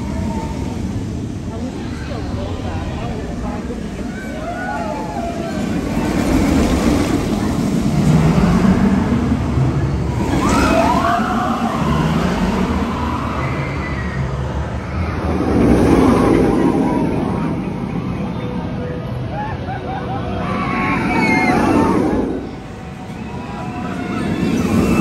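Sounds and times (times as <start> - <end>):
roller coaster train rumbling: 0.0 - 25.0
riders screaming: 10.2 - 15.2, 20.3 - 22.4, 23.2 - 25.0.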